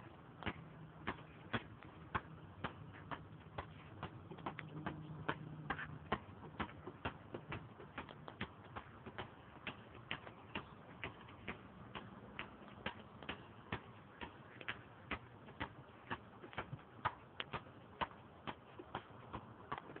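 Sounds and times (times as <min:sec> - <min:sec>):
basketball bouncing on asphalt: 0:00.0 - 0:20.0.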